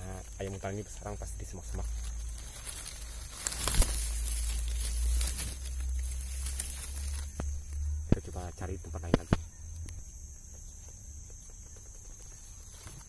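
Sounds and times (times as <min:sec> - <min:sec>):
high insect drone: 0:00.0 - 0:13.0
leaves and undergrowth rustling: 0:00.0 - 0:13.0
microphone handling rumble: 0:03.0 - 0:10.1.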